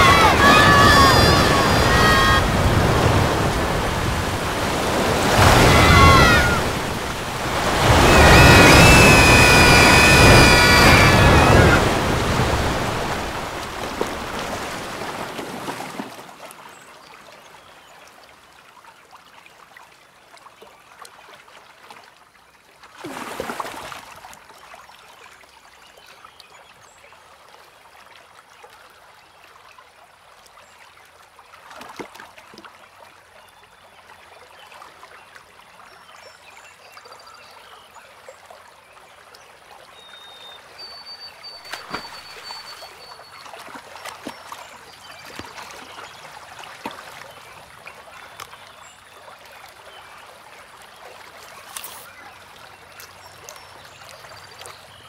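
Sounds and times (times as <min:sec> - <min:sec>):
high wavering cries: 0:00.0 - 0:02.6, 0:07.8 - 0:12.1
heavy rain: 0:00.0 - 0:14.6
water splash: 0:00.0 - 0:16.5, 0:23.0 - 0:24.2, 0:41.6 - 0:47.4
rushing floodwater: 0:00.0 - 0:17.3, 0:38.2 - 0:55.0
faint water trickle: 0:16.0 - 0:55.0.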